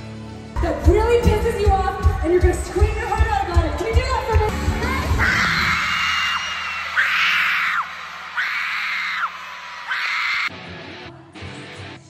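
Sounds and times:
live concert music: 0:00.0 - 0:12.0
crowd screaming: 0:04.8 - 0:10.5.

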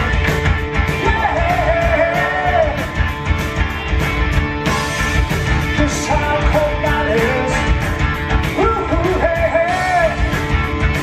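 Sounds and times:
male lead vocal: 0:00.0 - 0:03.0, 0:05.7 - 0:10.5
live rock band playing: 0:00.0 - 0:11.0.

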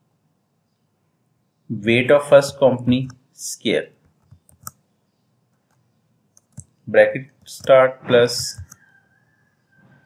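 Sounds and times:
computer keyboard keystrokes: 0:04.1 - 0:04.8, 0:08.4 - 0:08.8.

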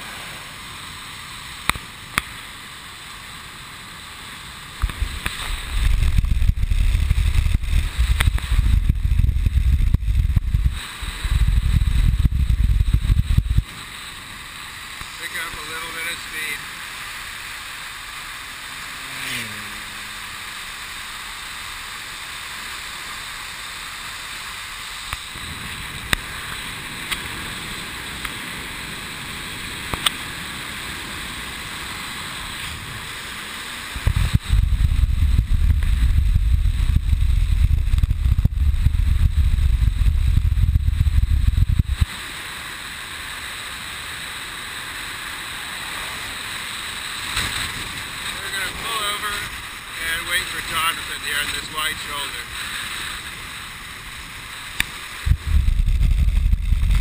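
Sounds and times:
heavy low wind buffeting: 0:04.6 - 0:13.8, 0:25.3 - 0:42.1, 0:55.1 - 0:57.0
wind rushing over microphone: 0:04.7 - 0:13.9, 0:25.1 - 0:42.3, 0:47.2 - 0:57.0.

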